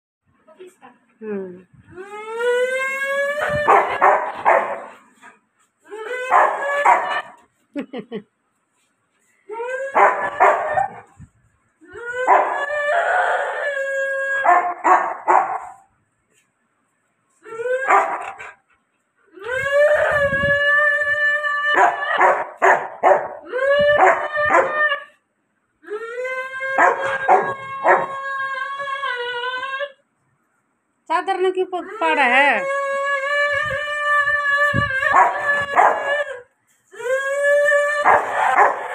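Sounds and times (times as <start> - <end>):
dog barking: 3.7 - 4.9, 6.3 - 7.2, 10.0 - 10.9, 14.5 - 15.8, 21.8 - 23.4, 38.1 - 38.8
dog howling: 5.9 - 7.4, 9.6 - 11.2, 11.9 - 15.7, 17.5 - 18.5, 19.4 - 25.2, 25.9 - 30.0, 31.9 - 38.9.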